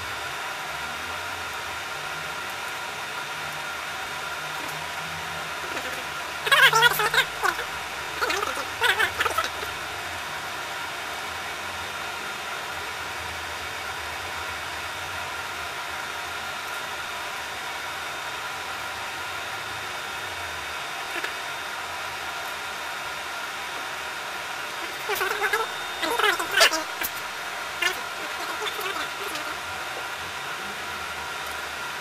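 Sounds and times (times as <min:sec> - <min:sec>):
mechanical hum with hiss: 0:00.0 - 0:32.0.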